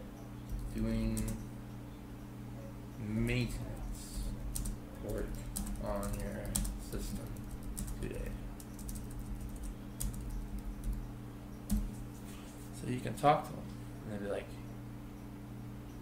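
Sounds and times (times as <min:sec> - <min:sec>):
steady low hum: 0:00.0 - 0:16.0
keyboard typing: 0:00.5 - 0:01.5, 0:03.8 - 0:11.1, 0:11.7 - 0:12.0.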